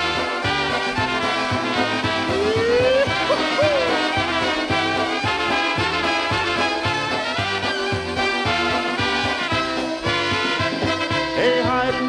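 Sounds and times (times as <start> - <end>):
polka band playing: 0.0 - 12.0.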